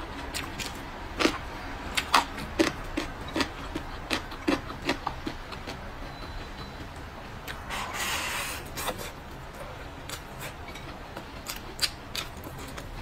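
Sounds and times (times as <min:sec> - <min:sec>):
person chewing food: 0:00.0 - 0:13.0.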